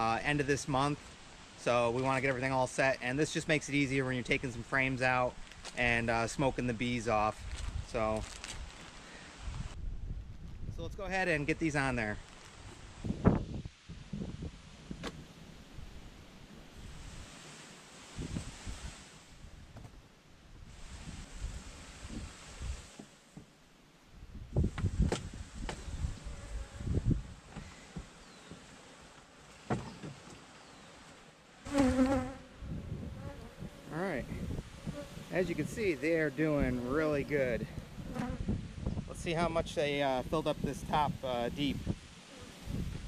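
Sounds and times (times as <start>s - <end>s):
honeybees buzzing: 31.6s - 38.6s.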